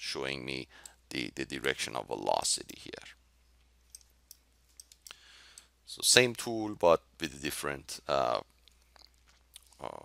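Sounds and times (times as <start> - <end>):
soft breath: 5.0 - 5.8.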